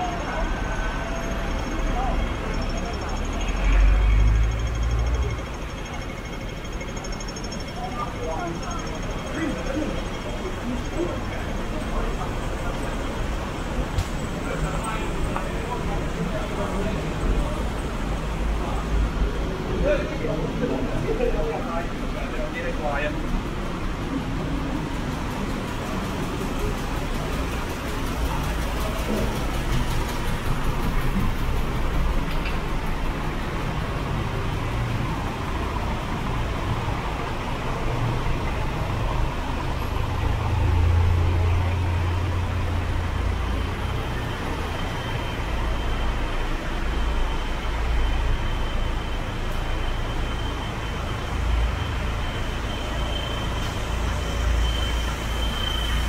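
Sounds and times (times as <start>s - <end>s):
city street traffic: 0.0s - 56.0s
high-pitched whine: 0.0s - 56.0s.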